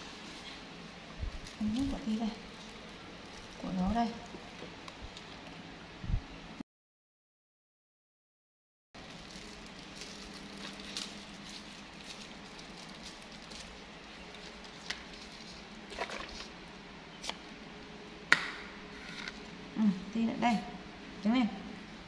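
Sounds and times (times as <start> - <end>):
faint room hum: 0.0 - 6.6, 9.0 - 22.0
plastic straw wrapper crinkling: 1.3 - 5.4, 9.0 - 16.6
straw piercing carton foil: 9.0 - 16.6.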